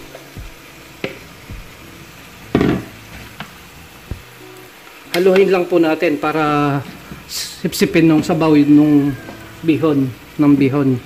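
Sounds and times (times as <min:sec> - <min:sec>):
food sizzling in a pan: 0:00.0 - 0:11.0.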